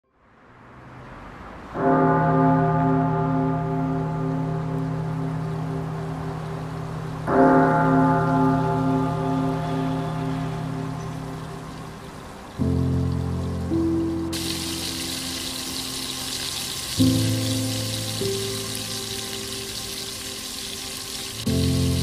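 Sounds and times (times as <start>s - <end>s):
low bell-like tone: 2.0s - 11.9s
soft rain-like hiss: 3.6s - 22.0s.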